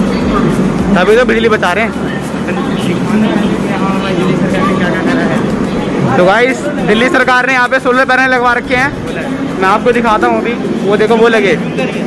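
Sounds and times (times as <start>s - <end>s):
indistinct voices talking: 0.0s - 12.0s
steady low hum: 0.0s - 12.0s.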